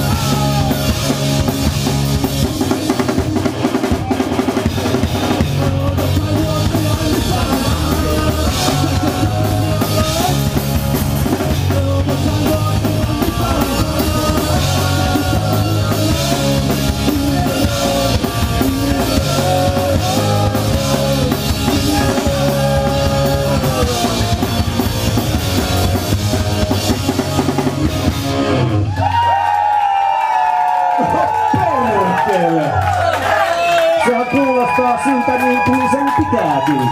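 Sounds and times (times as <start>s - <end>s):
drum kit beat: 0.0s - 29.2s
electric bass: 0.0s - 29.3s
electric guitar: 0.0s - 29.7s.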